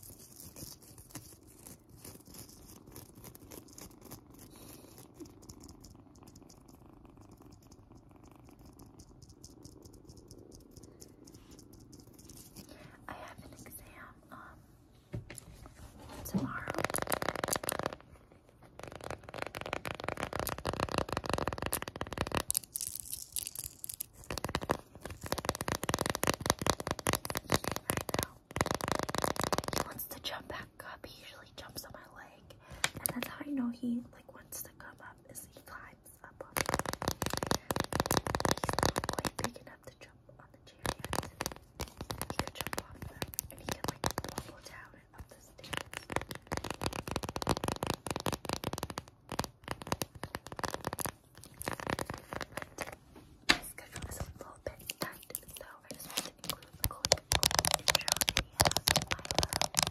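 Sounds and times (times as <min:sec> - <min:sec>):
kitten purring: 0:00.0 - 0:59.9
nails tapping on plastic: 0:55.9 - 0:59.9.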